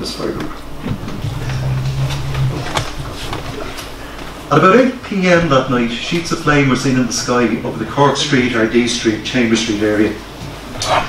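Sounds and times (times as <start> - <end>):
man humming: 1.1 - 3.6.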